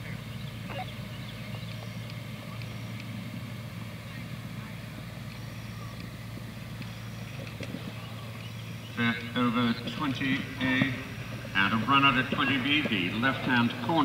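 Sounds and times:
constant low hum: 0.0 - 14.0.

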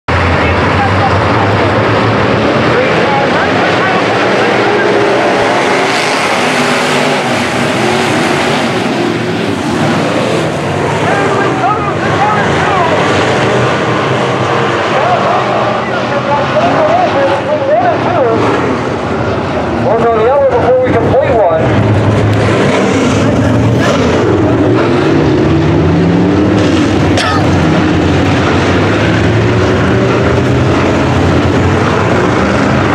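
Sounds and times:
race car engines droning: 0.1 - 32.9
voices: 2.6 - 6.0, 11.0 - 13.3.

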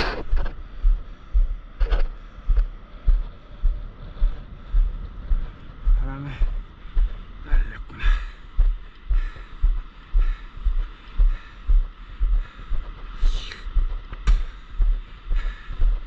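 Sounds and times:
steady hiss: 5.4 - 15.8.

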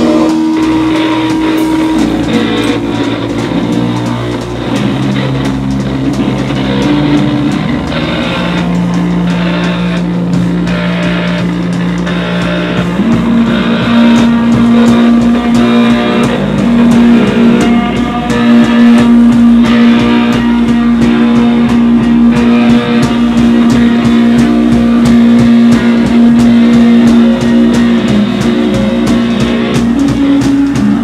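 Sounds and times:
droning distorted electric guitar: 0.0 - 31.0
drum and cymbal hits: 0.0 - 31.0.

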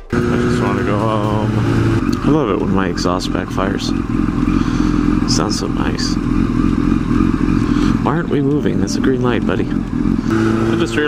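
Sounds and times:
motorcycle engine running low: 0.0 - 11.0.

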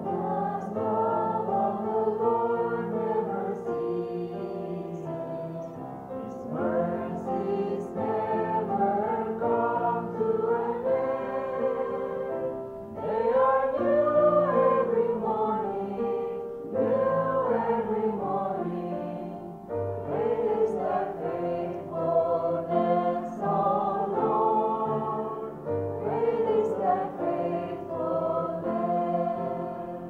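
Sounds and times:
girls singing into microphones: 0.0 - 30.0.

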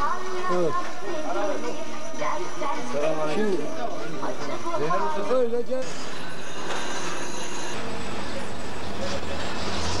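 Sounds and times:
street noise: 0.0 - 10.0.

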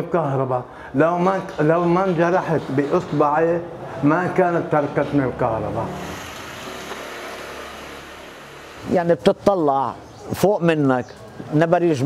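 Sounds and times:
even hiss: 5.9 - 9.4.

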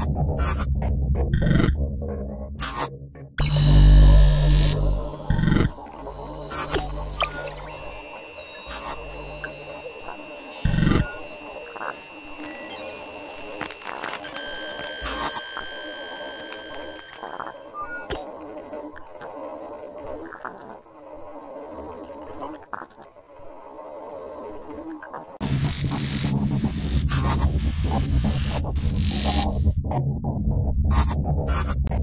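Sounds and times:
high electronic tones: 3.4 - 18.2
crackling digital glitch noises: 3.4 - 18.3, 25.1 - 29.6.

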